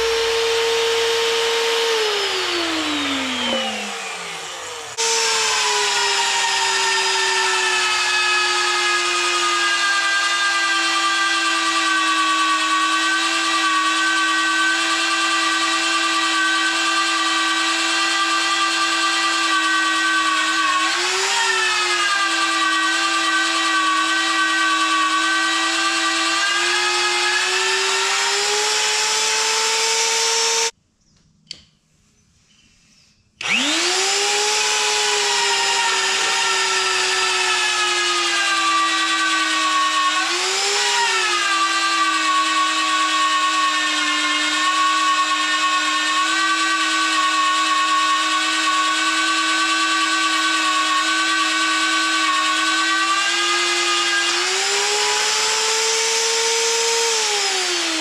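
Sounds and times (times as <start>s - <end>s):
drill motor whining: 0.0s - 30.8s, 33.4s - 58.0s.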